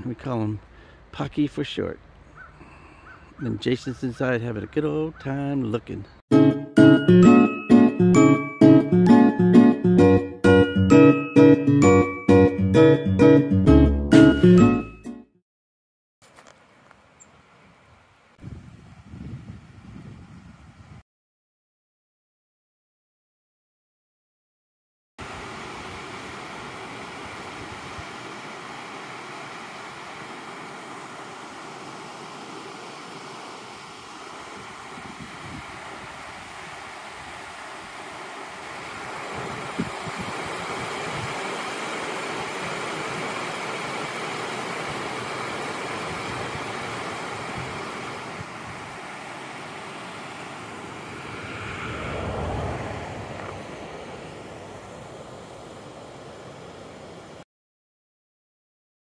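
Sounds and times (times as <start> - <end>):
water rushing over dam: 25.2 - 57.4
vehicle passing: 50.9 - 54.8.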